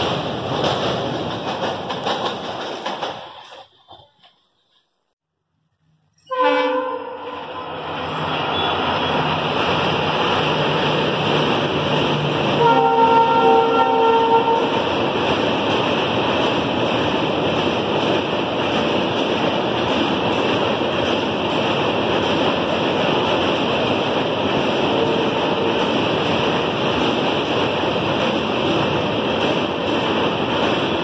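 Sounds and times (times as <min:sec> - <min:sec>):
train rumbling across steel bridge: 0:00.0 - 0:04.8, 0:05.8 - 0:31.0
train horn: 0:06.2 - 0:07.7, 0:12.5 - 0:14.7, 0:25.0 - 0:25.8.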